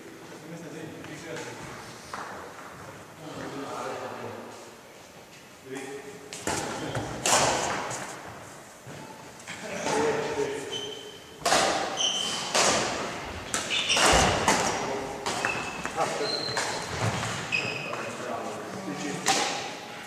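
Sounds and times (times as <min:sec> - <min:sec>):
racket strikes: 0:06.4 - 0:08.1, 0:11.4 - 0:16.9, 0:19.2 - 0:19.9
shoe squeaks: 0:10.6 - 0:12.5, 0:13.6 - 0:14.5, 0:15.4 - 0:18.2.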